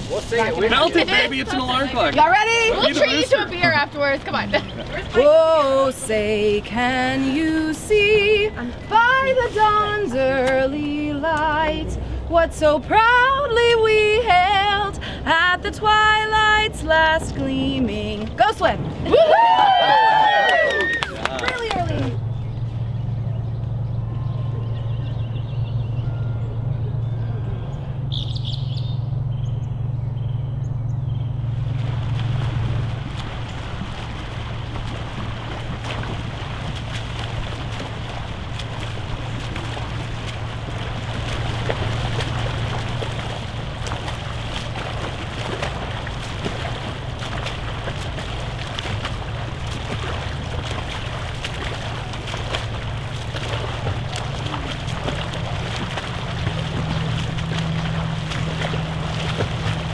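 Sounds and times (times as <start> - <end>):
swimmers splashing: 0.0 - 23.3, 31.4 - 59.9
steady low hum: 0.0 - 59.9
bird chirps: 22.2 - 31.4.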